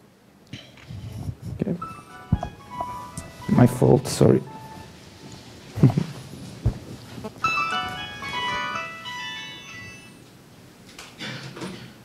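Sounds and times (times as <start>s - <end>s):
electronic jingle of chiming tones: 1.8s - 5.0s, 7.4s - 10.2s
dull thump: 6.6s - 6.9s.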